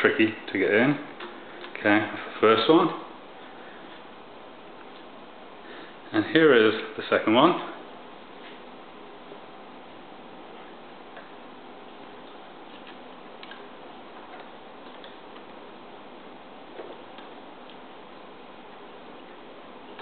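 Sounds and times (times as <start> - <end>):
steady background hiss: 0.0 - 20.0.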